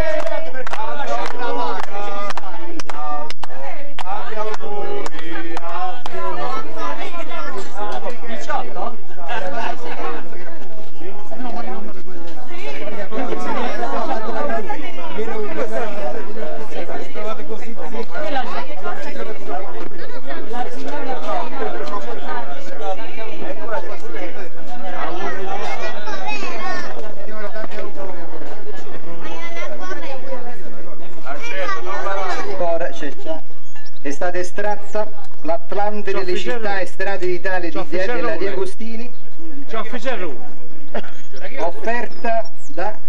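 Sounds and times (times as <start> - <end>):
crowd chatter: 0.0 - 43.0.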